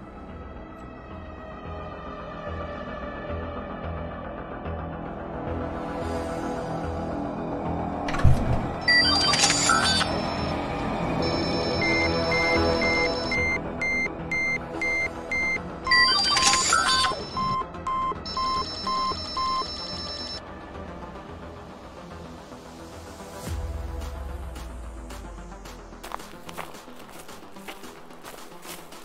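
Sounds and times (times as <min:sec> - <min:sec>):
evenly spaced beeps: 0:11.2 - 0:20.4.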